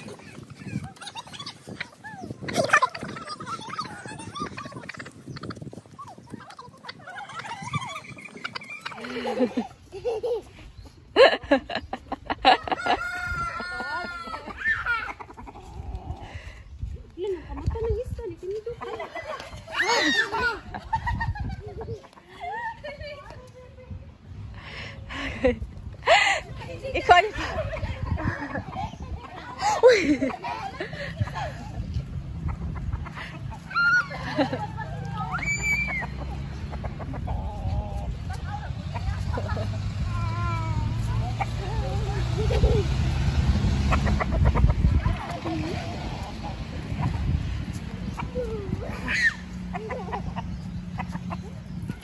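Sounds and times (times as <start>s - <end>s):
rooster crowing: 12.7s - 14.4s
rooster clucking: 12.7s - 16.4s, 35.4s - 40.1s, 40.8s - 52.0s.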